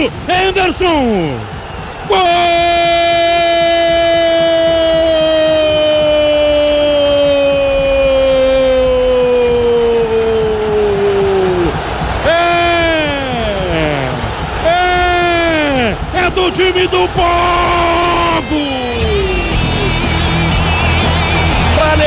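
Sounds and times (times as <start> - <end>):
commentator's drawn-out goal cry: 0.0 - 19.9.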